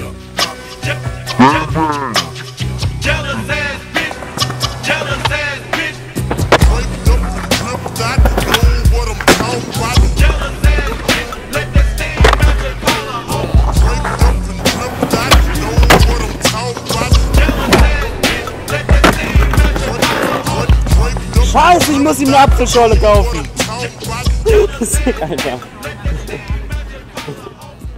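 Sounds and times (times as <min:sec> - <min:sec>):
skateboard wheels rolling on stone: 0:03.1 - 0:24.3
skateboard pops and landings: 0:04.0 - 0:11.3, 0:12.1 - 0:13.0, 0:13.9 - 0:21.1
music with heavy bass beat: 0:06.2 - 0:27.9.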